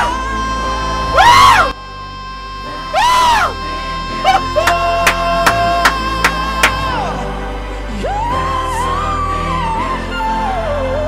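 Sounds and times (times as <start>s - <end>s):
male singer holding high note: 0.0s - 10.8s
backing music: 0.0s - 11.0s
crowd cheering: 4.2s - 7.1s.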